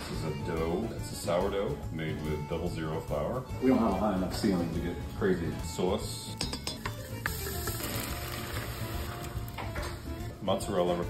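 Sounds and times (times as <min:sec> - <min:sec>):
tarantella background music: 0:00.0 - 0:11.0
wine trickling into sauce: 0:06.7 - 0:09.7.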